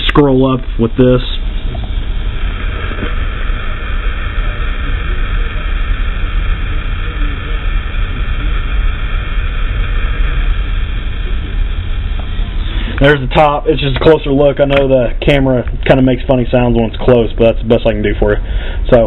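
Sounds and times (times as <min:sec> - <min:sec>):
camera rumbling hiss: 0:00.0 - 0:19.0.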